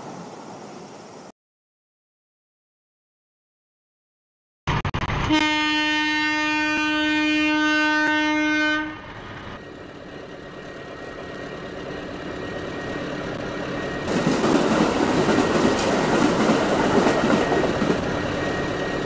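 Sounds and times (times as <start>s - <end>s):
train running on rails: 0.0s - 1.3s, 5.0s - 19.0s
train horn: 5.3s - 9.1s.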